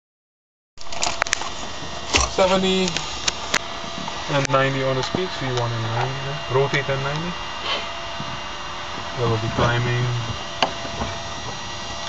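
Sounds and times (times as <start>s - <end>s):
turboprop engines droning: 0.9s - 12.0s.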